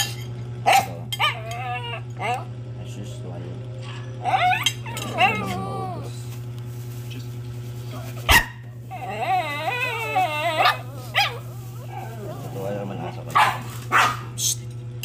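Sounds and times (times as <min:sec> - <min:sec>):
dog barking: 0:00.7 - 0:01.6, 0:08.3 - 0:08.8, 0:10.5 - 0:14.4
dog whining: 0:00.7 - 0:02.5, 0:03.8 - 0:06.3, 0:08.6 - 0:13.3.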